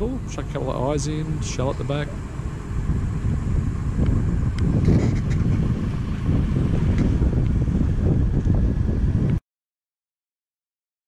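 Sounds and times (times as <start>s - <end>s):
vehicle driving on dirt road: 0.0s - 9.4s
wind buffeting microphone: 0.0s - 9.4s.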